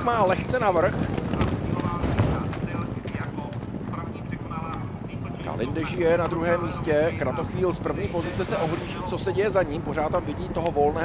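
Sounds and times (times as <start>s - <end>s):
horses galloping on turf: 0.0s - 11.0s.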